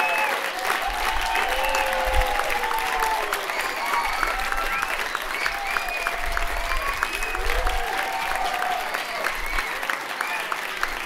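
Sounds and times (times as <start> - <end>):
audience applauding: 0.0 - 11.0
long held cheers: 0.0 - 11.0.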